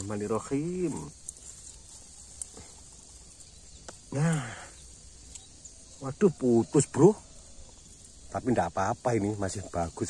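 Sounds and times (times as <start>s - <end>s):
small ticks: 0.0s - 6.0s
hands rustling through grass and soil: 0.0s - 10.0s.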